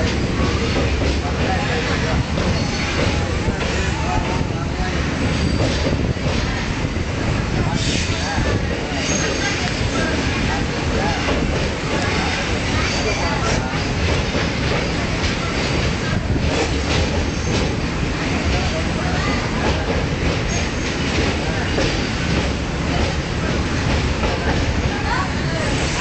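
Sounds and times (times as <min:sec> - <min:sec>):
train carriage running on track: 0:00.0 - 0:26.0.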